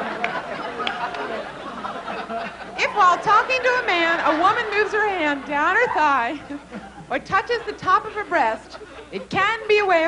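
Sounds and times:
audience laughing and chattering: 0.0s - 10.0s.

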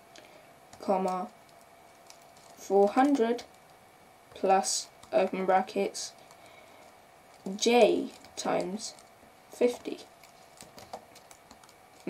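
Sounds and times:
keyboard keystrokes: 9.7s - 12.0s.

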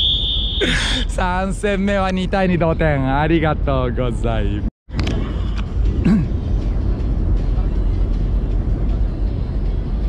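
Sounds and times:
low background rumble: 0.2s - 10.0s.

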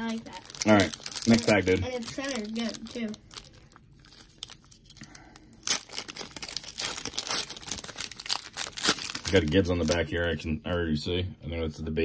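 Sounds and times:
foil wrapper crinkling: 0.0s - 10.1s
foil wrapper ripping: 0.0s - 10.1s.

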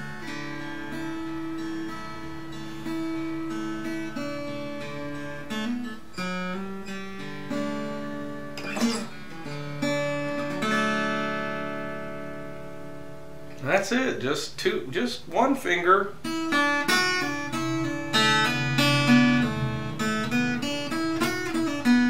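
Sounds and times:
fingerpicked acoustic guitar: 0.0s - 22.0s.

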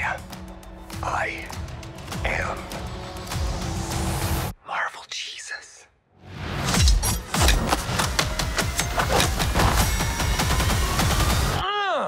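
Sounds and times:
trailer music: 0.0s - 4.6s, 6.0s - 11.6s
man whispering: 4.5s - 6.0s.

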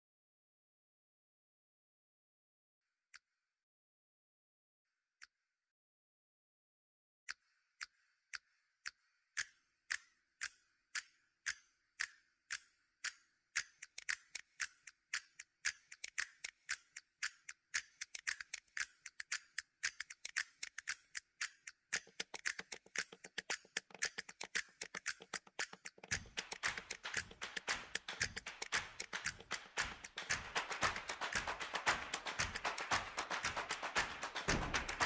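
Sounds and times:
ticking percussion: 9.4s - 35.0s.

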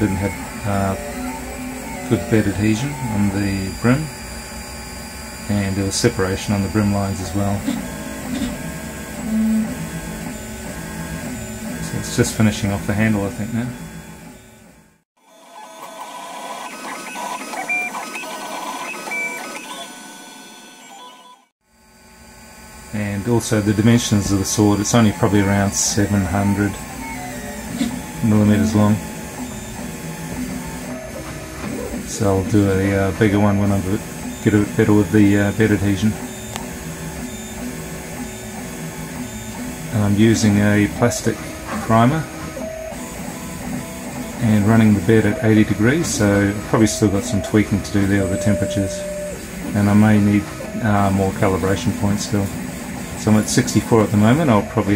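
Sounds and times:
stepper motors whining: 0.0s - 21.5s, 22.9s - 54.9s.

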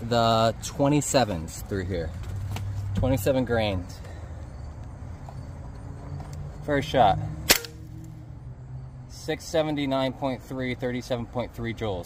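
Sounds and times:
low steady background rumble: 0.0s - 12.0s.

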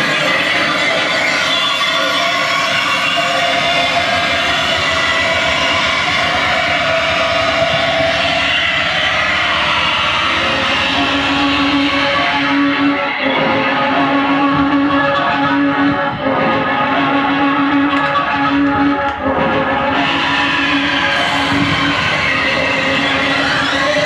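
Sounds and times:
distorted noise music: 0.0s - 24.0s
strong low drone: 1.9s - 24.0s.

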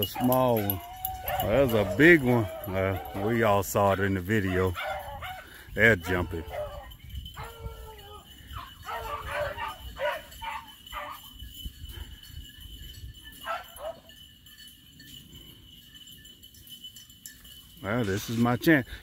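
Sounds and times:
hounds baying: 0.0s - 12.4s, 13.3s - 14.2s.

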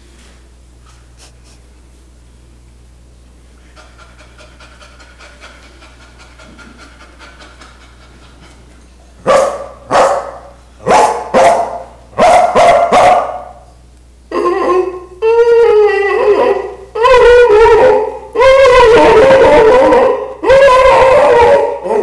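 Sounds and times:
man panting like a dog: 3.7s - 8.7s
man barking like a dog: 9.2s - 13.6s.

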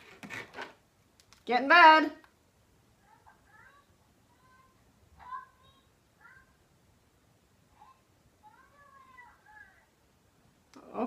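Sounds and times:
child's voice through speaker: 3.1s - 6.6s, 7.8s - 9.9s.

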